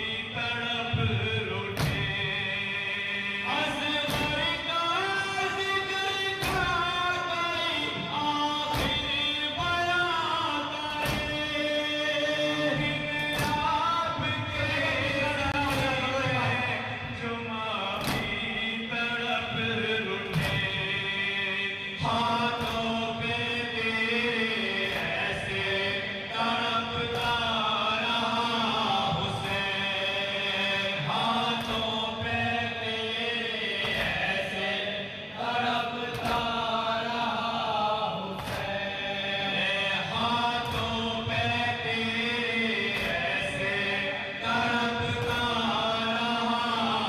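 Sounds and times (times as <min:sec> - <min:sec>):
men chanting through loudspeakers: 0:00.0 - 0:47.0
chest-beating slaps: 0:01.8 - 0:02.2, 0:04.1 - 0:04.6, 0:06.4 - 0:06.8, 0:08.7 - 0:09.2, 0:10.9 - 0:11.4, 0:13.2 - 0:13.8, 0:15.6 - 0:16.1, 0:18.0 - 0:18.5, 0:20.3 - 0:20.8, 0:22.6 - 0:23.0, 0:24.8 - 0:25.4, 0:31.6 - 0:32.0, 0:33.8 - 0:34.4, 0:36.1 - 0:36.8, 0:38.4 - 0:38.8, 0:42.9 - 0:43.5.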